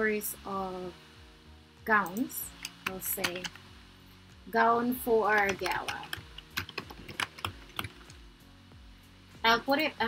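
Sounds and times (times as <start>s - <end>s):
typing on computer keyboard: 2.6s - 3.6s, 5.4s - 8.1s.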